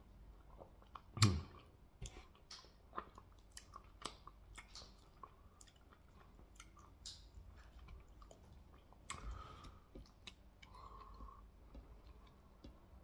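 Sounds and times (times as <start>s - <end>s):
chewing with wet clicks: 0.3s - 13.0s.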